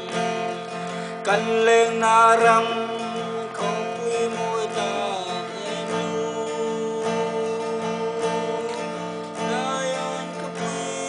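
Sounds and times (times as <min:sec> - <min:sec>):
acoustic guitar strumming: 0:00.0 - 0:11.0
man singing long notes: 0:00.0 - 0:11.0.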